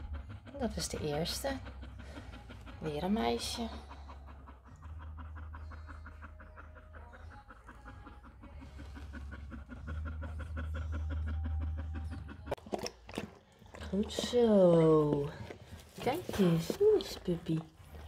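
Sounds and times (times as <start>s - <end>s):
dog panting rapidly: 0.0s - 18.0s.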